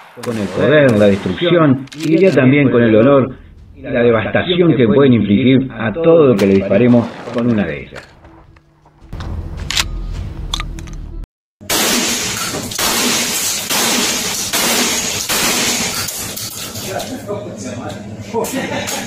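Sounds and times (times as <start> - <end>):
gunshots echoing indoors: 0.0 - 8.4, 11.6 - 16.5
low wind-like rumble: 2.3 - 7.0.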